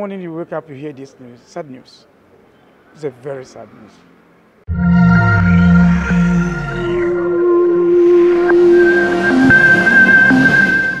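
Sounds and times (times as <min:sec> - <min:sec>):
held electronic tones: 0:04.7 - 0:11.0.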